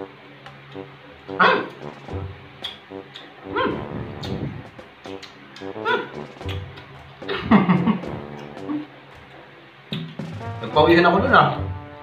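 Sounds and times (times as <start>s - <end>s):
background music: 0.0s - 12.0s
dog barking: 1.4s - 1.7s, 3.5s - 3.8s, 5.8s - 6.2s.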